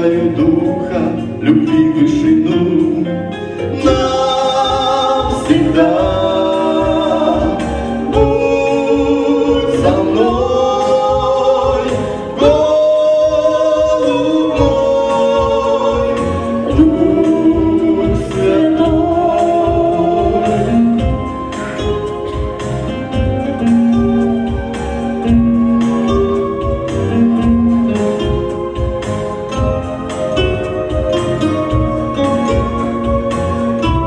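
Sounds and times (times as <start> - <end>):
accompaniment with steady beat: 0.0 - 34.0
man and woman singing in harmony: 0.0 - 34.0.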